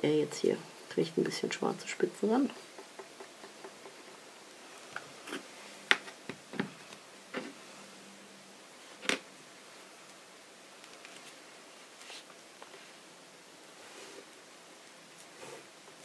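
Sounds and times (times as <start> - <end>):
light taps and knocks: 2.5 - 4.2.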